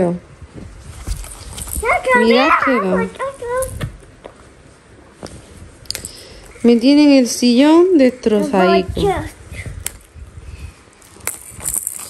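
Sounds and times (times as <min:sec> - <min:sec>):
woman speaking: 0:02.1 - 0:03.2, 0:06.6 - 0:09.3.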